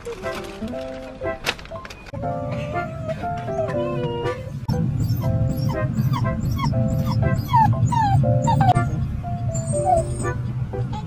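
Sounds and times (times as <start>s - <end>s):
dog whimpering: 2.6s - 10.4s.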